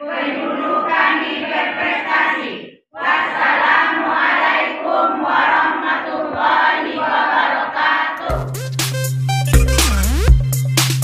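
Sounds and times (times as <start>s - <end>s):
women chanting in unison: 0.0s - 8.4s
beat-driven music with deep bass: 8.3s - 11.0s.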